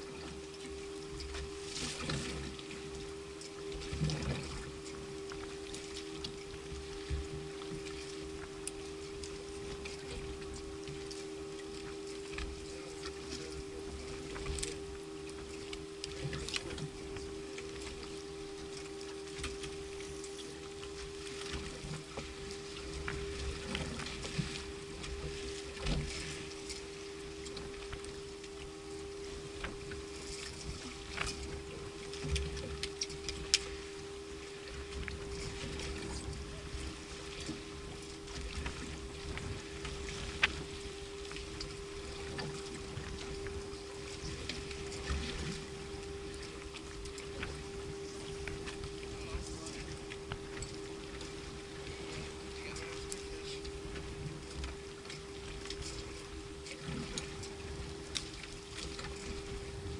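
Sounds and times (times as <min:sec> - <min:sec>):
steady mechanical hum: 0:00.0 - 0:59.9
water against hull: 0:00.0 - 0:59.9.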